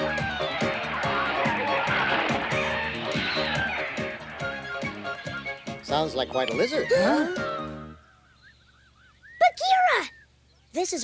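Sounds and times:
background music with beat: 0:00.0 - 0:07.9.

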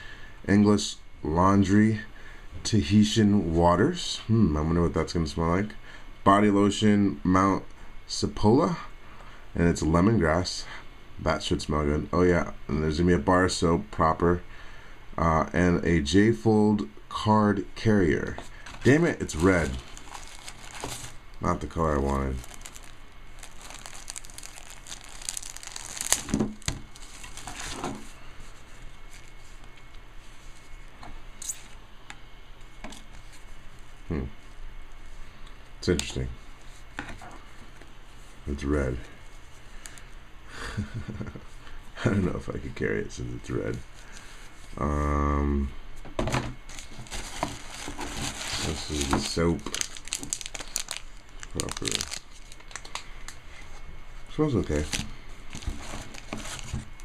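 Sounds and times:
plastic bag crinkling: 0:18.7 - 0:28.1, 0:46.7 - 0:53.4, 0:54.6 - 0:57.0.

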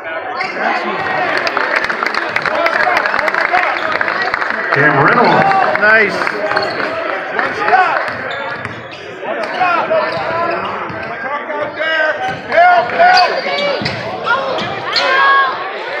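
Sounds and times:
spectators talking: 0:00.0 - 0:16.0.

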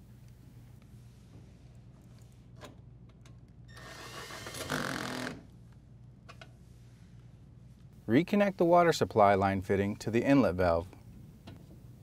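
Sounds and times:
cordless drill driving screw: 0:03.7 - 0:05.4.

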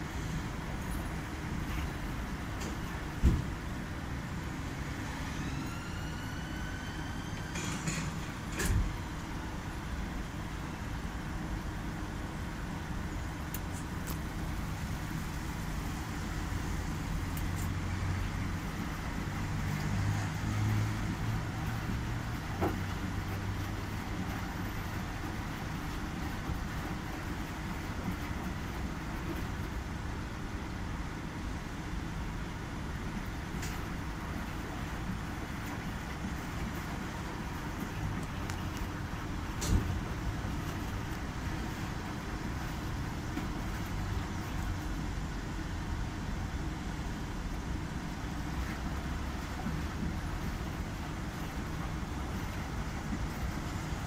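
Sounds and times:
washing machine motor hum: 0:00.0 - 0:54.0.

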